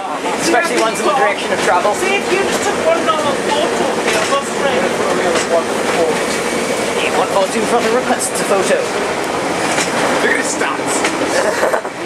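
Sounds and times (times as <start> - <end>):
people talking: 0.0 - 9.1, 9.7 - 12.0
diesel railbus running noise: 0.0 - 12.0.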